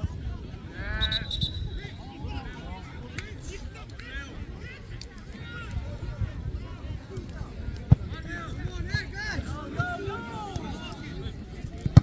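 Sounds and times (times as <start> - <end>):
players calling and shouting: 0.7 - 12.0.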